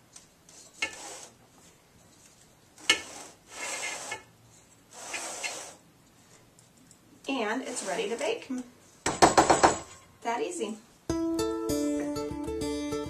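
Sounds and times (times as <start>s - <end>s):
spatula scraping cake batter: 0.5s - 1.4s, 2.8s - 4.3s, 4.9s - 5.8s, 7.4s - 8.6s.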